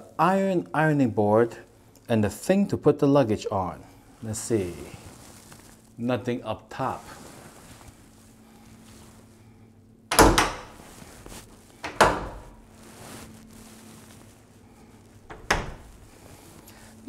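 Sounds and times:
closet doors knocking shut: 0:10.1 - 0:10.8, 0:11.8 - 0:12.6, 0:15.3 - 0:16.0.

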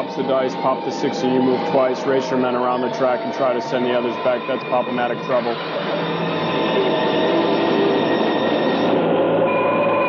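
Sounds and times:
spaceship roar: 0:00.0 - 0:10.0
whining tones: 0:00.0 - 0:10.0.

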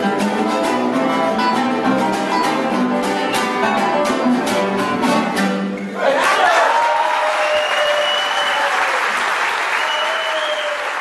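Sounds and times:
audience applauding: 0:06.0 - 0:11.0
drawn-out cheers: 0:06.0 - 0:11.0.

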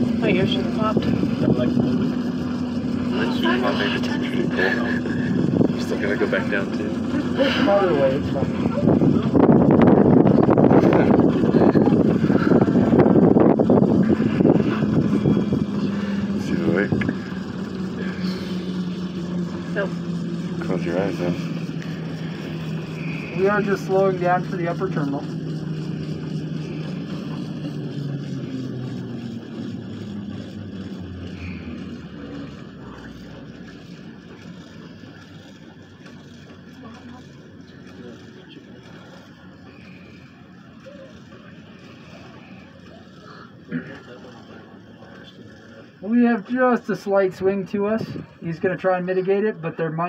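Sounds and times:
wind buffeting cabin: 0:00.0 - 0:43.7, 0:47.3 - 0:48.5
steady low hum: 0:00.0 - 0:50.0.

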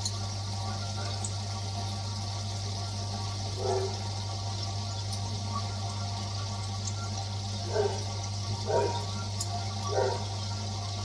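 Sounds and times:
filter low hum: 0:00.0 - 0:11.0.

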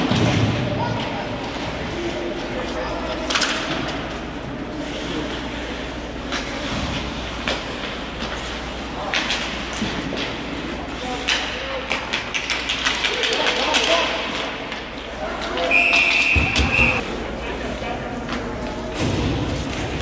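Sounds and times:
sticks and puck clacking: 0:01.4 - 0:04.4, 0:05.1 - 0:17.0.

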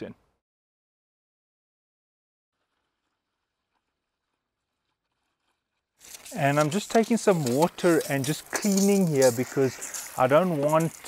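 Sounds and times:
very faint hiss: 0:05.4 - 0:11.0.

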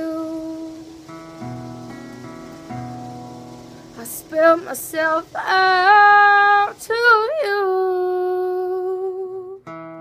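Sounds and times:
woman singing: 0:00.0 - 0:01.1, 0:04.0 - 0:09.7
acoustic guitar strum: 0:00.0 - 0:08.6, 0:09.5 - 0:10.0.

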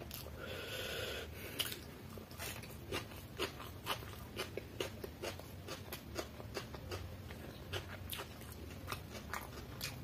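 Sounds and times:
mouth chewing food: 0:01.5 - 0:10.0.

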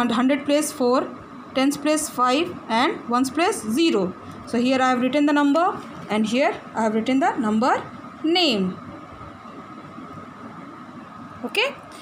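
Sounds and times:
faint high whine: 0:00.0 - 0:12.0
room noise hiss: 0:00.0 - 0:12.0.

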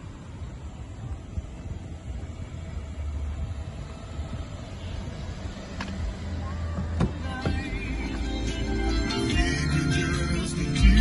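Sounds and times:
low wind rumble: 0:00.0 - 0:11.0
music: 0:06.7 - 0:11.0.

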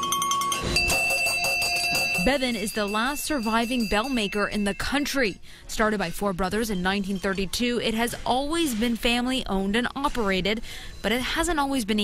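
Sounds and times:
quick bell clapper strikes: 0:00.0 - 0:04.3
brass hand bell ringing: 0:00.0 - 0:05.0.

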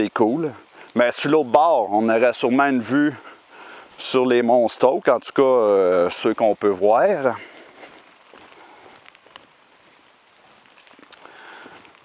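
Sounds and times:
light rain patter: 0:00.0 - 0:12.0
soft clicks and rustles: 0:07.6 - 0:12.0.

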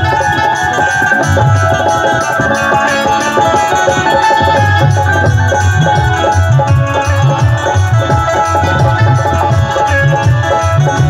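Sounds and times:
held melody line: 0:00.0 - 0:11.0
steady drum beat: 0:00.0 - 0:11.0.

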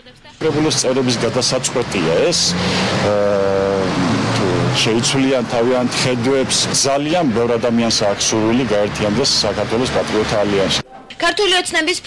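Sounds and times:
man speaking: 0:00.3 - 0:10.8.

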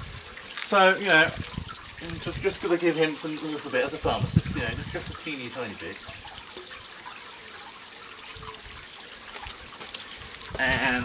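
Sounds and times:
faint trickle of liquid: 0:00.0 - 0:11.0.

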